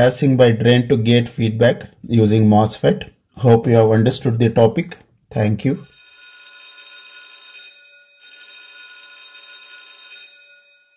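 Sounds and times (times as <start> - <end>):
bell-like ringing tone: 5.8 - 10.9.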